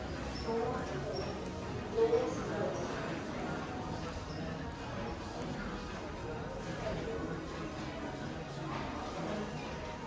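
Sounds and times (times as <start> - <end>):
chatter of passers-by: 0.0 - 10.0.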